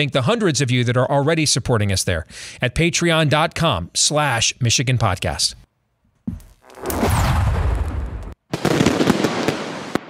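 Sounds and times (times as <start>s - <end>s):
blasts and crackling bangs: 6.6s - 10.0s.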